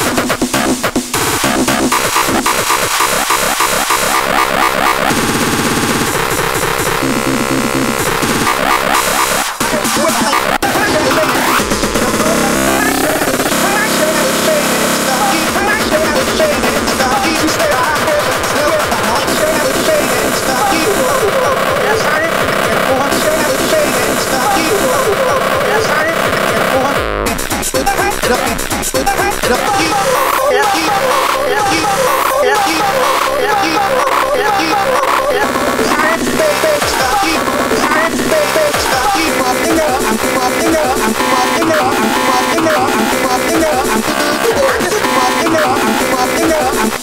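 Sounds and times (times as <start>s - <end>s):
distorted fast kick drums: 0.0s - 47.0s
wavering pitched synth layer: 1.9s - 46.9s
downward pitch sweep: 10.4s - 18.6s.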